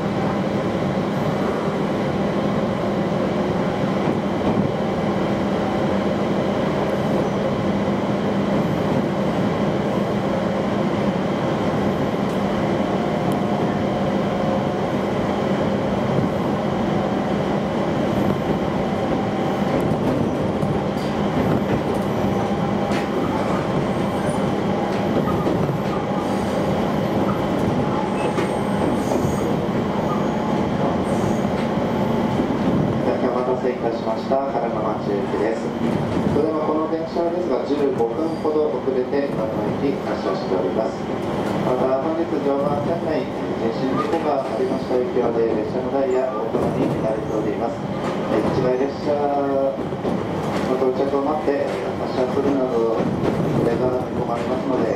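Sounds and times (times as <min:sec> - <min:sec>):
train wheels rumbling on rail: 0:00.0 - 0:54.9.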